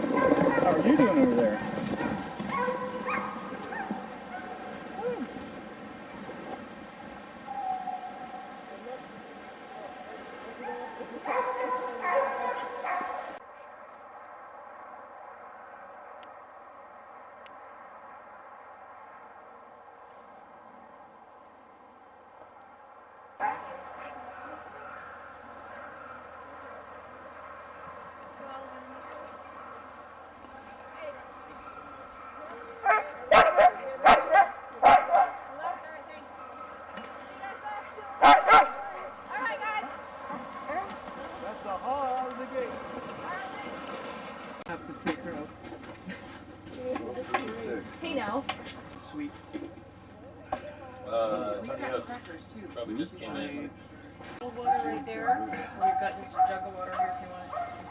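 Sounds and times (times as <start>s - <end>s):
loud close dog barks: 0.0s - 4.6s, 10.6s - 13.4s, 23.4s - 26.4s, 31.5s - 35.5s, 38.2s - 39.2s
sled dogs yipping and whining: 0.0s - 8.9s, 9.5s - 13.4s, 23.4s - 28.2s, 31.0s - 46.6s.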